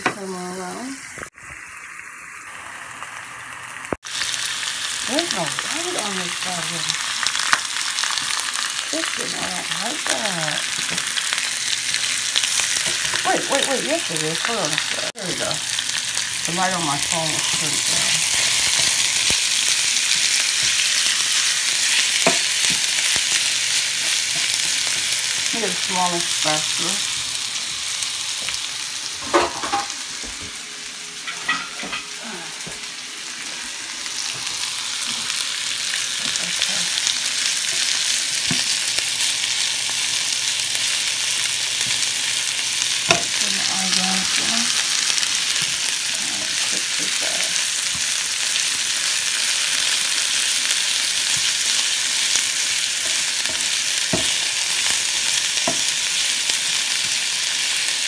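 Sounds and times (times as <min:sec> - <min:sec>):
chicken sizzling in oil: 0:00.1 - 0:58.0.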